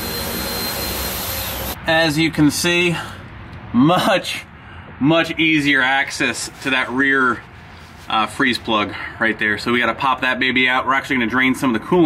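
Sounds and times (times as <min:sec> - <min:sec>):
faint high whine: 0:00.0 - 0:02.2
fan blower rushing: 0:00.0 - 0:02.8.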